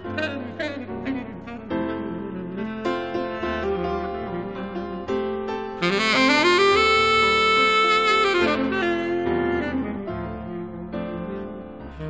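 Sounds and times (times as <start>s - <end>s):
tenor saxophone: 0.0s - 5.2s, 5.8s - 12.0s
piano chords: 0.0s - 12.0s.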